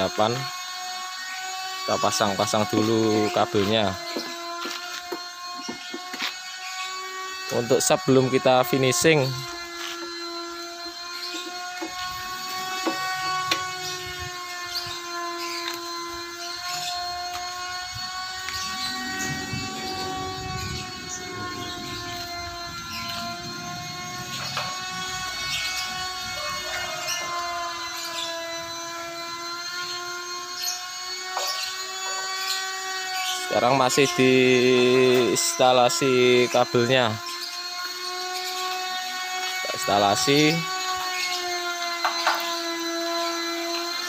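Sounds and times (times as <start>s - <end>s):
motor humming: 0.0s - 44.0s.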